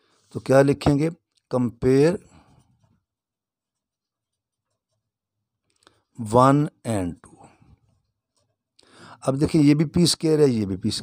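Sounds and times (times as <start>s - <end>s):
person speaking: 0.3s - 2.6s.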